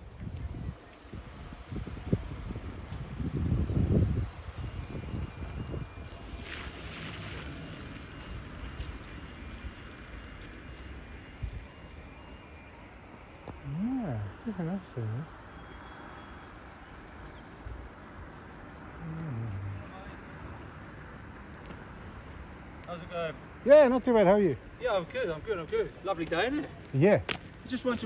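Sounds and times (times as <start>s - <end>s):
wind buffeting microphone: 0.0s - 12.1s.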